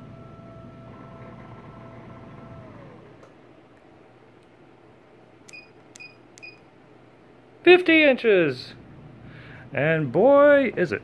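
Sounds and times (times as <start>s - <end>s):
short high beeps: 5.5s - 6.6s.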